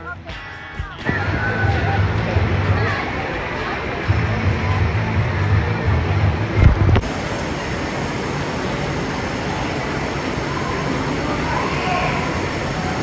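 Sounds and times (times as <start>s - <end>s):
water rushing and splashing: 1.0s - 13.0s
wind rumbling on microphone: 4.1s - 7.6s.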